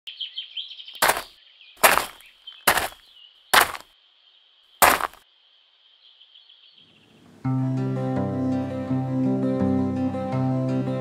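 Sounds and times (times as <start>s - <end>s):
small birds chirping: 0.1s - 7.5s
footsteps crunching on gravel: 1.0s - 3.9s, 4.8s - 5.2s.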